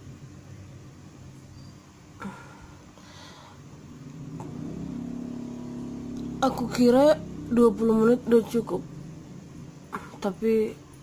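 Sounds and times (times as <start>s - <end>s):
motor engine humming: 3.3s - 11.0s.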